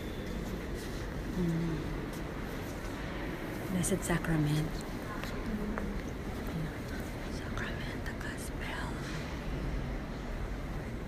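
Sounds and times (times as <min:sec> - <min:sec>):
whispered speech: 0:01.1 - 0:02.9, 0:03.7 - 0:09.3.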